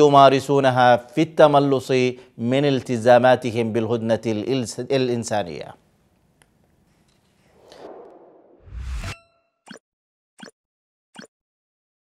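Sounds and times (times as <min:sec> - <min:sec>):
rising whoosh: 0:07.5 - 0:09.2.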